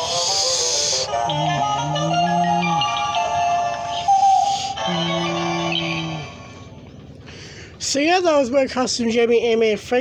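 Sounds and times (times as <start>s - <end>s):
electronic toy tune: 0.0s - 6.6s.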